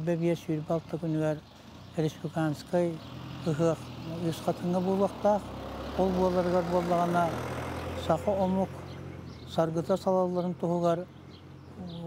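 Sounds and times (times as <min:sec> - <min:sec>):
low vehicle engine rumble: 0:00.0 - 0:12.0
man speaking: 0:02.0 - 0:05.4, 0:06.0 - 0:07.4, 0:09.5 - 0:11.1.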